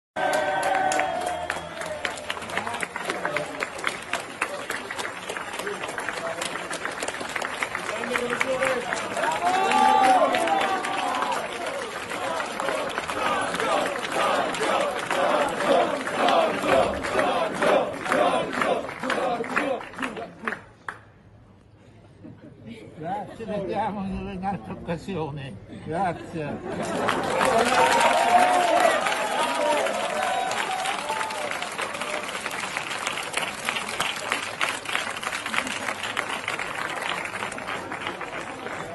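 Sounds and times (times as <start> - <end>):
crowd applauding: 0.2 - 21.0, 26.7 - 38.9
people clapping: 0.2 - 21.2, 26.6 - 38.9
crowd chanting: 12.1 - 20.1.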